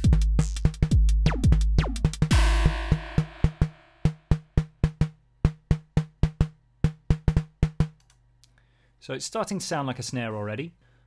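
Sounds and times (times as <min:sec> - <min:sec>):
dry synthesized snare hits: 0:00.1 - 0:08.0
kick drum hits: 0:00.9 - 0:08.0
crash cymbal wash: 0:02.3 - 0:04.2.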